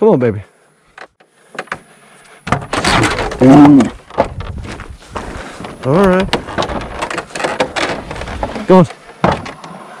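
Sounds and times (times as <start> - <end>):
cattle hooves knocking wooden boards: 1.0 - 10.0.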